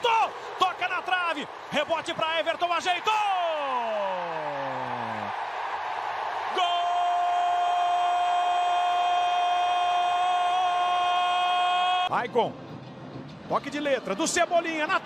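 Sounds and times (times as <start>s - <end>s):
commentator holding long goal shout: 0.0s - 5.3s, 6.4s - 12.1s
stadium crowd cheering: 0.0s - 12.1s, 13.5s - 15.0s.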